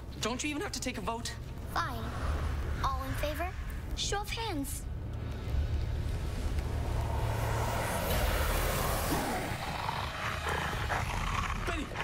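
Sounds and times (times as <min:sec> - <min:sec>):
hissing roar: 0:06.0 - 0:12.0.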